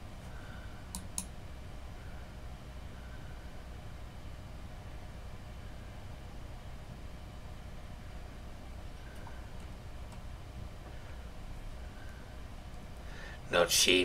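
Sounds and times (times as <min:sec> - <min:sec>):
low room hum: 0:00.0 - 0:14.0
computer mouse clicks: 0:00.9 - 0:01.3.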